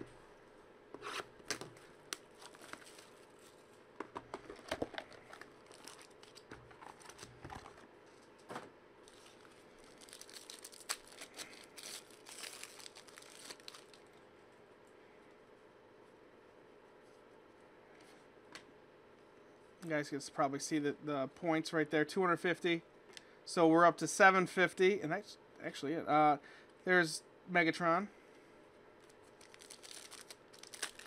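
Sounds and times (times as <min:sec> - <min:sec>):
foil wrapper crinkling and tearing: 0:02.1 - 0:03.8, 0:04.5 - 0:07.8, 0:09.0 - 0:14.2, 0:29.0 - 0:31.0.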